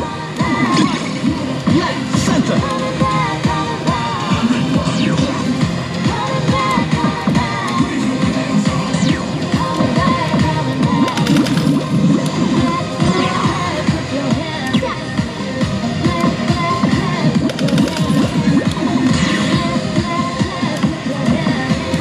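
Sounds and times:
loud music and electronic din: 0.0 - 22.0.

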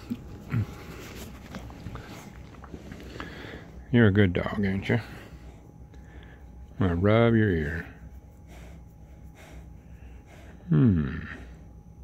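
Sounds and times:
low steady hum: 0.0 - 12.0
soft breathing close to microphone: 8.3 - 10.7.

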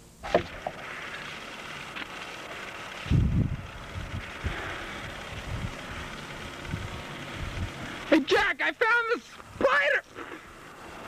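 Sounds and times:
wind buffeting microphone: 3.0 - 8.0.

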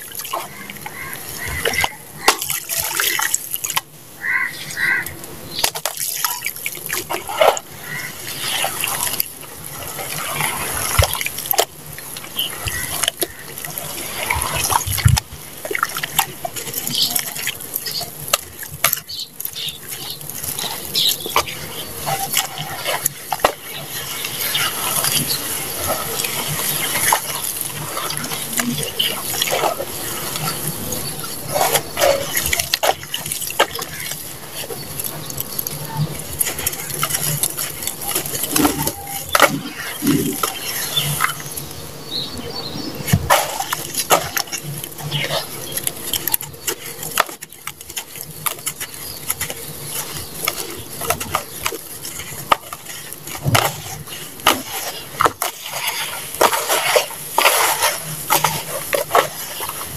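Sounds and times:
hands squelching wet sand: 0.0 - 41.7, 43.0 - 59.9
clumps splatting into water: 1.6 - 3.8.

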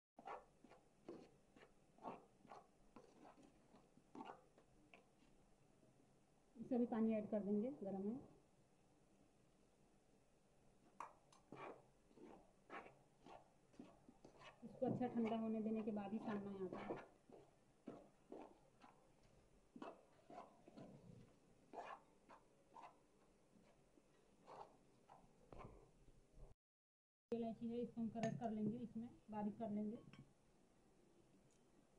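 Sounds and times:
spatula scraping bowl: 0.2 - 5.2, 11.0 - 25.8.

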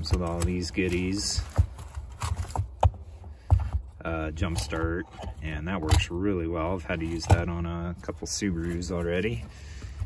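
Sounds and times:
fabric case rustling: 0.0 - 6.2.

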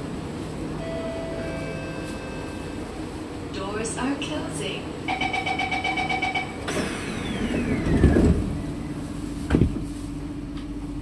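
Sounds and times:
rapid door-closing beeps: 5.1 - 6.7
sliding doors closing with whine: 5.1 - 10.1.

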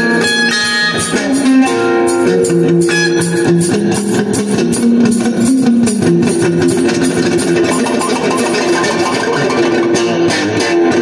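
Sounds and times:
blues electric guitar: 0.0 - 11.0.

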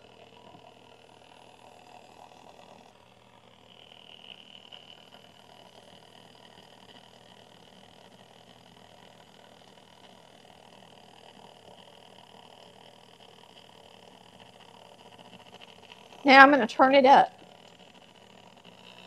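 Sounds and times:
stand mixer running faintly: 0.0 - 19.0.

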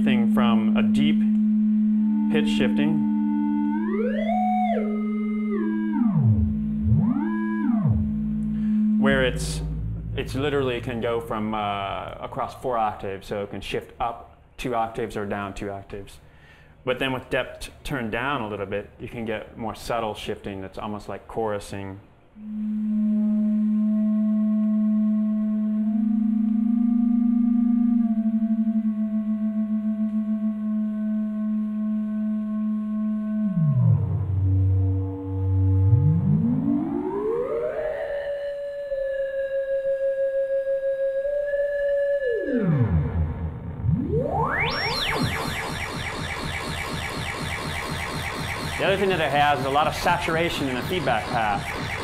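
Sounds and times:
synthesizer tone with echoes: 0.0 - 12.3, 22.1 - 52.0.

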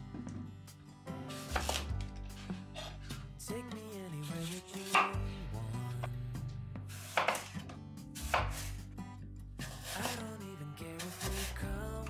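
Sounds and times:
knife slicing apple on cutting board: 1.4 - 1.9, 4.5 - 5.2, 6.9 - 7.6, 8.2 - 8.8, 9.6 - 10.2, 11.0 - 11.5.

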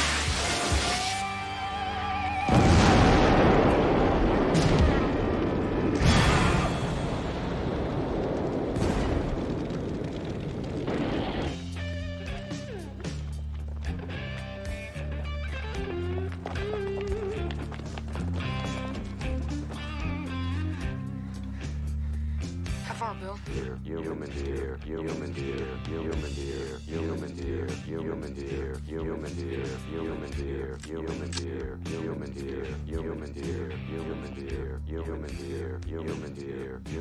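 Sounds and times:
rock music: 0.0 - 2.6, 11.5 - 23.4
booms and crashes: 2.5 - 11.8
explosion blast: 2.5 - 11.8.

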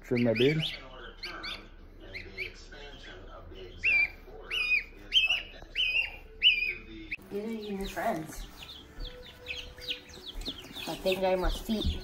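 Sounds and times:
gosling peeping: 0.0 - 12.0.

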